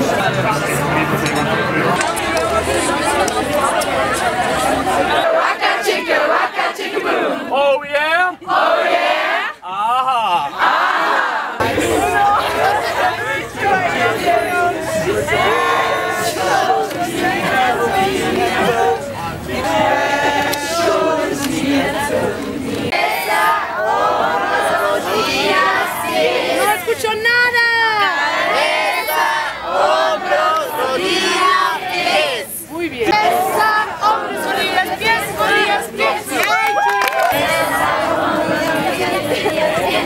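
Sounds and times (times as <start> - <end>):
group of voices talking: 0.0 - 40.0
group of people shouting: 36.3 - 38.0.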